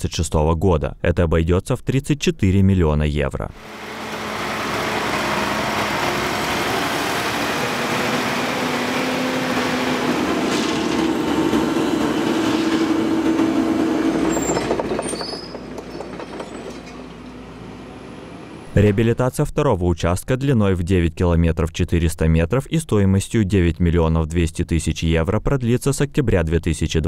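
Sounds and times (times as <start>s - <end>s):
steel tracks clattering and squealing: 3.6s - 18.7s
excavator diesel engine running: 3.6s - 19.1s.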